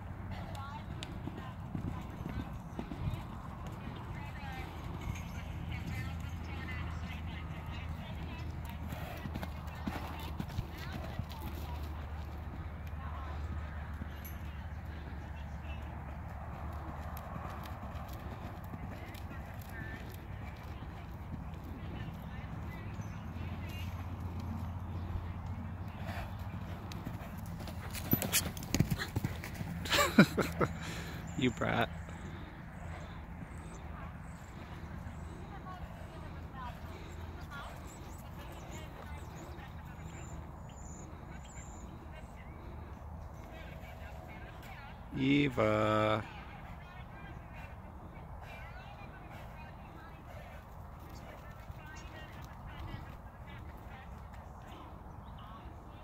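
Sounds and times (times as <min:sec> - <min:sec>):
horse hoofbeats on dirt: 0:00.0 - 0:45.1, 0:46.2 - 0:56.0.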